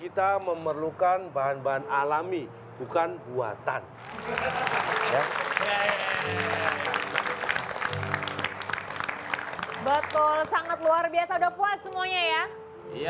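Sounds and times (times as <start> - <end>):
audience applauding: 4.0 - 11.4.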